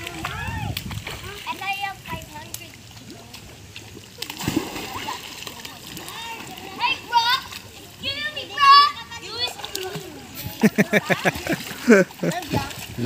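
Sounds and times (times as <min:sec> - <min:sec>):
water splashing in a pool: 0:00.0 - 0:13.0.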